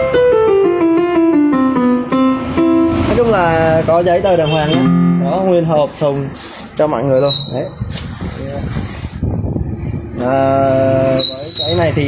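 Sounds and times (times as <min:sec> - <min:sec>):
keyboard notes descending: 0:00.0 - 0:05.9.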